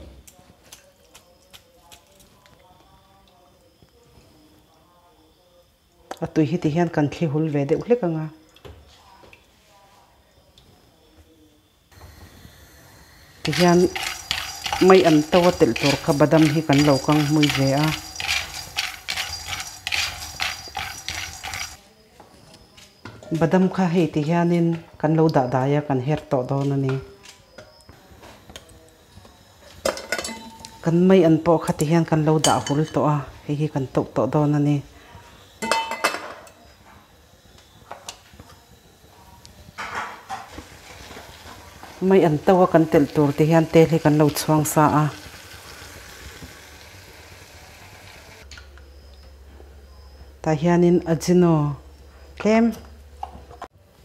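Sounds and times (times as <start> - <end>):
peanuts rattling in a pan: 13.4 - 21.8, 40.6 - 46.8.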